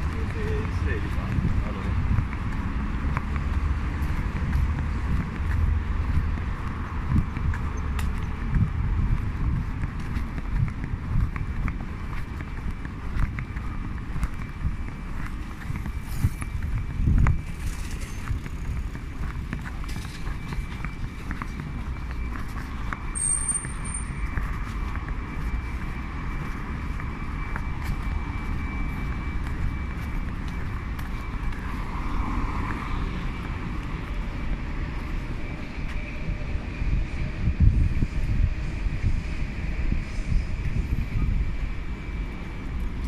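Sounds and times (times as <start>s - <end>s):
road traffic rumble: 0.0s - 43.0s
high-pitched squeak: 23.1s - 24.2s.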